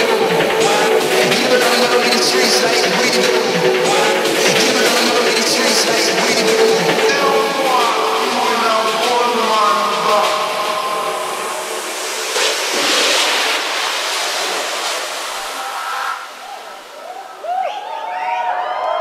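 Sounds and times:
held synth chords: 0.0s - 17.4s
noise sweep: 0.0s - 18.3s.

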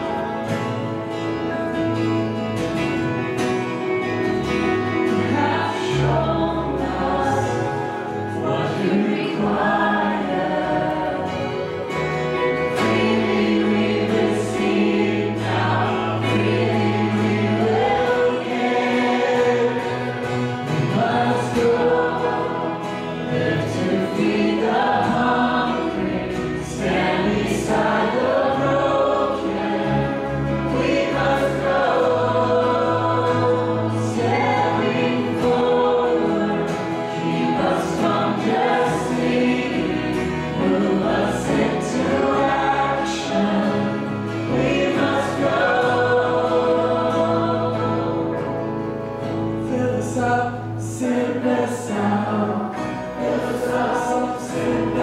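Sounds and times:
voices singing together: 0.0s - 2.0s, 2.6s - 55.0s
bass: 0.0s - 55.0s
guitars: 0.0s - 55.0s
keyboard: 0.0s - 55.0s.

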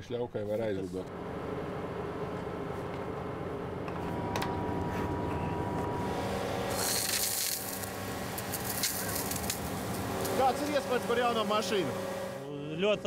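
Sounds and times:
engine and pump humming: 1.0s - 13.0s
water jet spraying with hiss: 6.0s - 12.4s.

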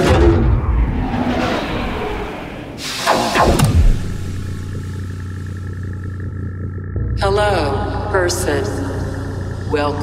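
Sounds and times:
low bass drone: 0.0s - 10.0s
noise burst with falling sweeps: 0.3s - 6.2s.

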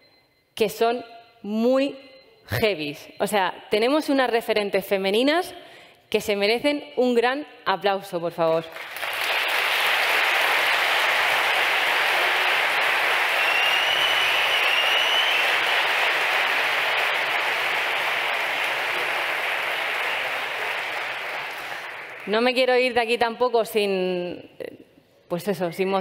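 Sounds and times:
audience applauding: 8.7s - 22.6s.

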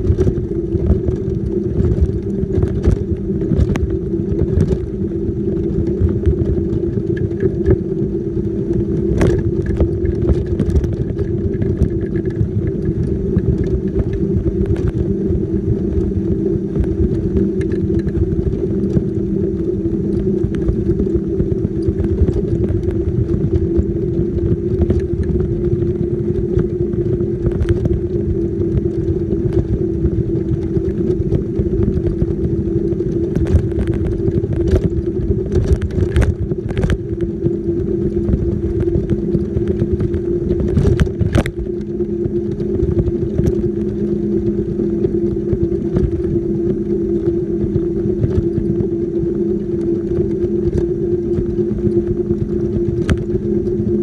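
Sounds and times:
wheelchair motor whine: 0.0s - 54.0s
wheels rumbling on road: 0.0s - 54.0s
wind on microphone: 0.0s - 54.0s.

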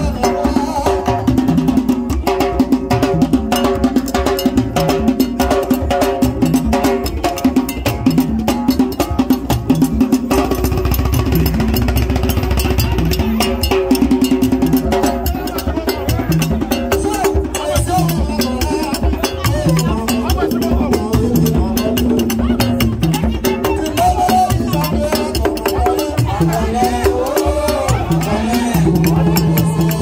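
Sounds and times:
hand drum ensemble: 0.0s - 30.0s.

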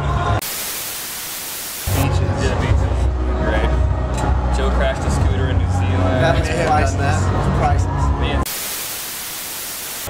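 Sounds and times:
static white noise hiss: 0.4s - 2.0s, 8.5s - 10.0s.

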